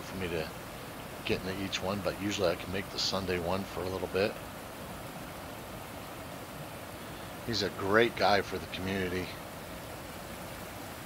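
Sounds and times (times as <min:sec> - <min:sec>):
waterfall rushing: 0:00.0 - 0:11.0.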